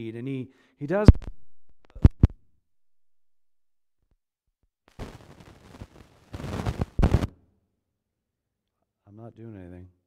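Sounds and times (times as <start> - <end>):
microphone thumps: 1.0 - 2.4, 6.4 - 7.3.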